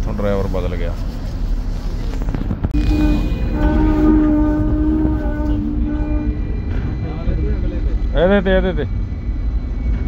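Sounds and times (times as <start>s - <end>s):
tram rumbling: 0.0s - 10.0s
tram horn tone: 2.8s - 7.1s.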